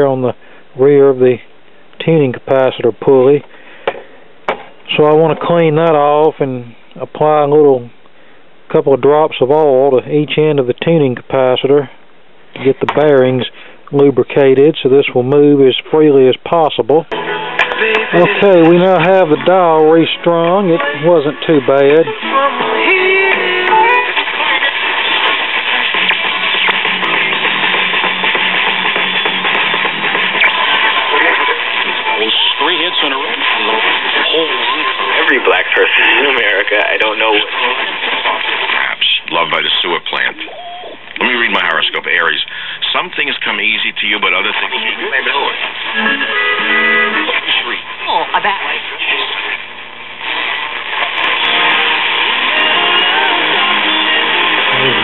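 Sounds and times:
guitar music on radio: 16.5 - 55.0
voice on radio: 18.1 - 22.2, 30.6 - 46.0, 47.0 - 49.6.

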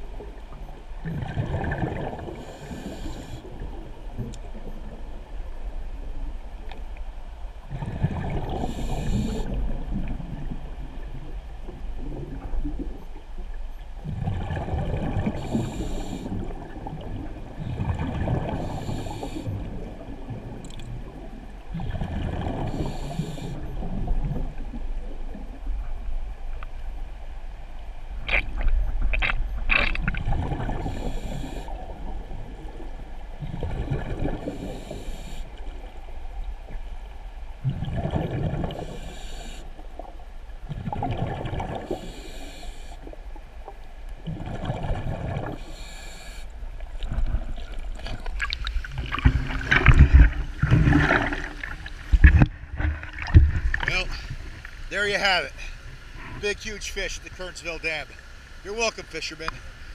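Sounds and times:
exhaled bubbles rumbling: 1.0 - 2.8, 7.7 - 26.3, 28.2 - 34.9, 37.6 - 39.0, 40.6 - 42.1, 43.7 - 45.7, 46.7 - 54.9
regulator inhale hiss: 2.4 - 3.6, 8.6 - 9.6, 15.3 - 16.4, 18.5 - 19.7, 22.7 - 23.7, 30.8 - 31.8, 34.4 - 35.7, 38.8 - 39.8, 41.9 - 43.2, 45.6 - 46.6.

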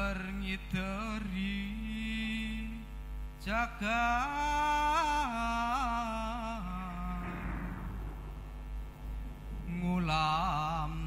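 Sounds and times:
man singing unaccompanied: 0.0 - 7.8, 9.6 - 11.0
low electrical hum: 0.0 - 11.0.

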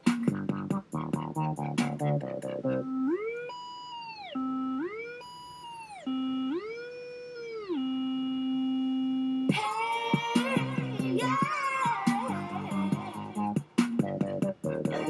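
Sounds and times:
electronic beat: 0.0 - 5.7, 9.5 - 15.0
sliding synthesizer note: 0.3 - 3.4.

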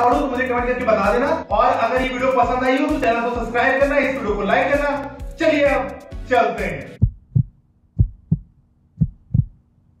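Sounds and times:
heartbeat thumps: 7.0 - 9.6.

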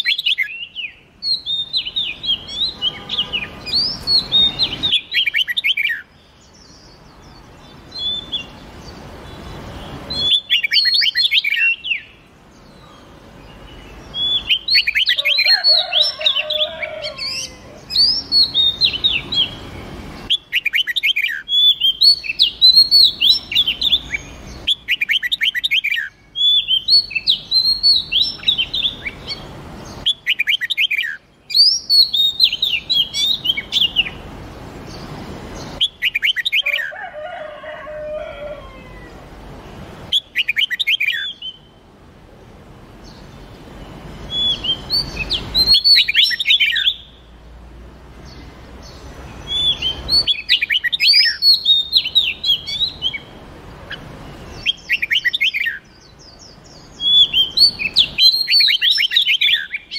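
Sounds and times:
recorded birdsong chirps and whistles: 0.0 - 59.9.

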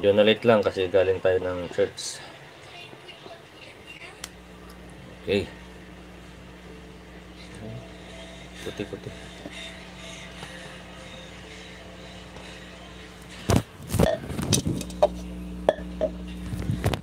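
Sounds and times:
low room tone hum: 3.4 - 17.0.

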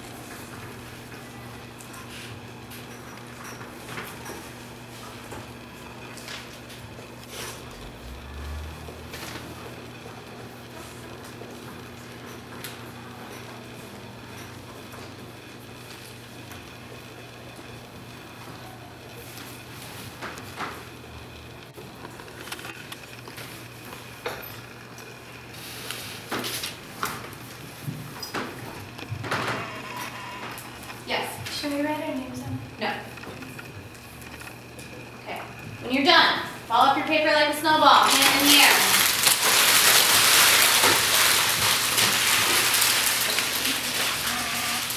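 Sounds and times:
steady low hum: 0.0 - 39.2.

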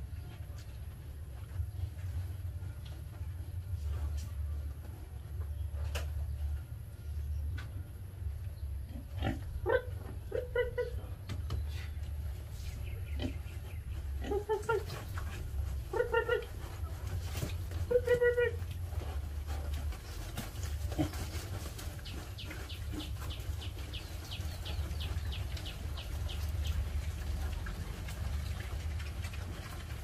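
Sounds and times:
steady low hum: 0.0 - 30.0
piglets chewing greens: 11.5 - 30.0.

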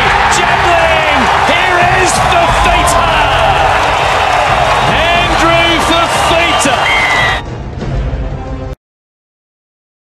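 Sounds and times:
crowd noise: 0.0 - 7.5
commentator calling play excitedly: 0.1 - 3.7, 4.8 - 7.4.

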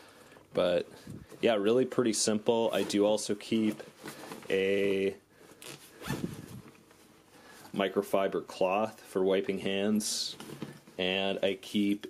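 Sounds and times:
zipper being pulled open: 5.6 - 6.7.

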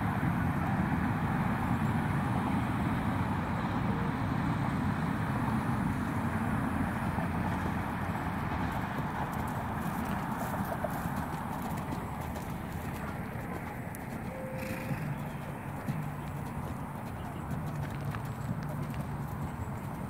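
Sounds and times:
horse hoofbeats on dirt: 6.6 - 20.0.

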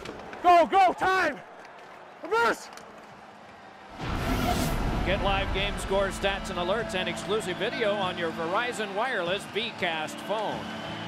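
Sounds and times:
whoosh: 4.0 - 6.4
commercial music: 4.0 - 11.0.

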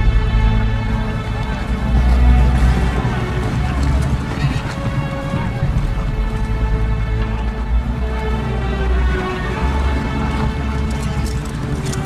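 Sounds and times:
hooves clip-clopping: 0.0 - 12.0
orchestral music: 0.0 - 12.0
horses whinnying: 1.1 - 12.0.

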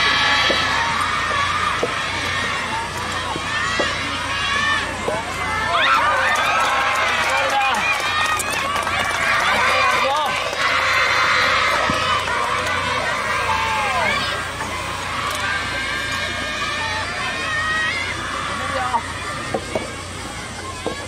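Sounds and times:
crowd shouting and cheering: 0.0 - 21.0.

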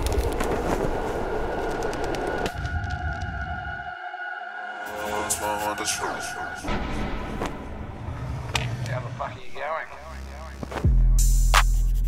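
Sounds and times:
subway train rumbling: 0.0 - 9.2.

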